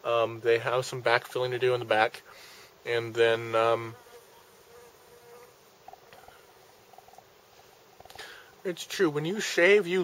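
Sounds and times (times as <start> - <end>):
bee buzzing: 3.0 - 8.6.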